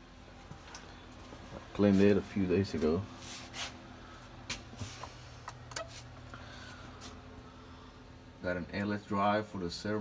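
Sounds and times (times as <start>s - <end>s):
faint low electrical hum: 0.0s - 10.0s.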